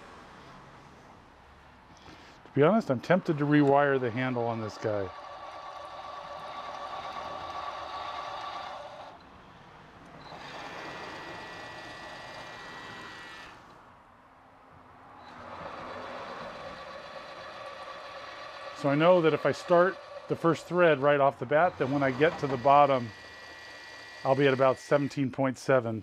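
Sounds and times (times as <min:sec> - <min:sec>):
tapping machine motor whining: 0:02.0 - 0:09.3, 0:10.1 - 0:13.8, 0:15.2 - 0:25.2.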